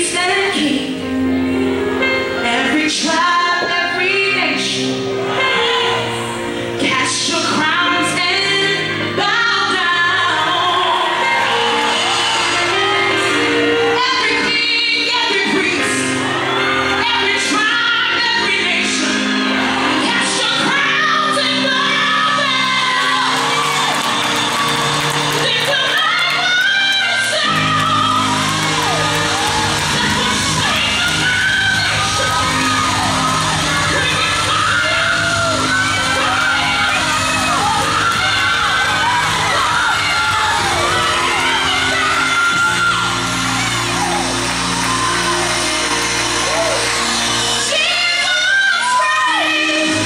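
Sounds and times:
bass: 0:00.0 - 0:50.0
gospel singing with accompaniment: 0:00.0 - 0:50.0.

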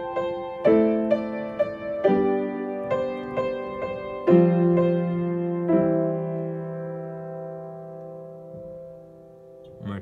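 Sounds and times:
piano chord: 0:00.0 - 0:10.0.

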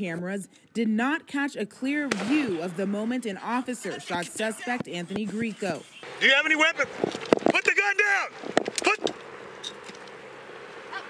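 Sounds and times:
microphone hiss and hum: 0:02.1 - 0:11.0.

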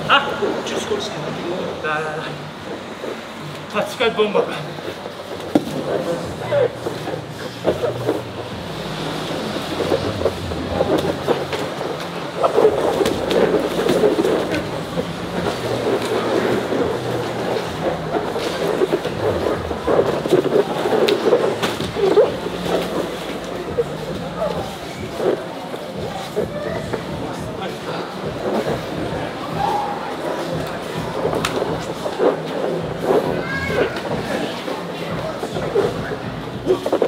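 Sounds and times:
steady low hum: 0:00.0 - 0:37.0
scuffling on gym mats: 0:05.2 - 0:27.6.

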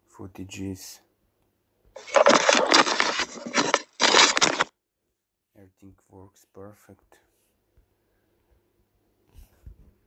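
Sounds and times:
rough unpitched noise: 0:02.0 - 0:04.7.

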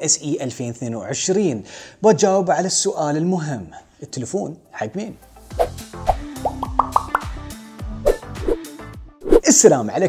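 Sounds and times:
jingle music with a beat: 0:05.3 - 0:08.0
short bubbly pops: 0:06.4 - 0:07.3.

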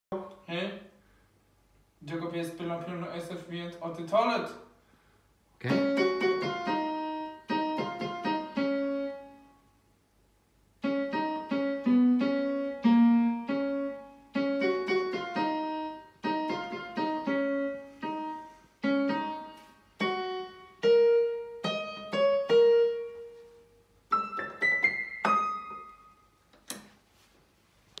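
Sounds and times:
electronic keyboard piano melody: 0:05.7 - 0:09.6, 0:10.8 - 0:26.3.

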